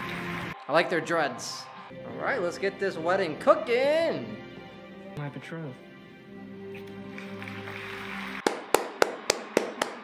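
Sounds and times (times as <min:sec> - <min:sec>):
soft sustained music: 0:00.0 - 0:08.6
person clapping slowly: 0:08.4 - 0:10.0.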